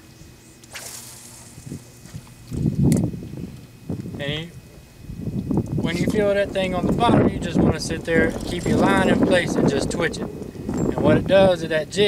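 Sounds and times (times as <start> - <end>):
fishing rod swishing: 0.6 - 2.4.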